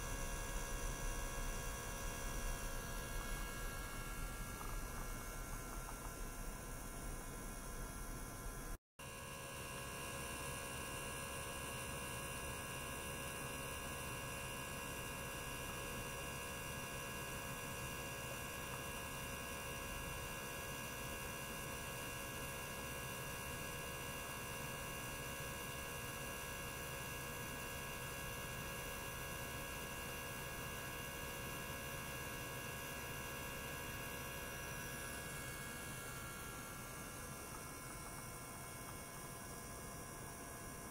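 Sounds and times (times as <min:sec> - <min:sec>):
electrical hum: 0:00.0 - 0:40.9.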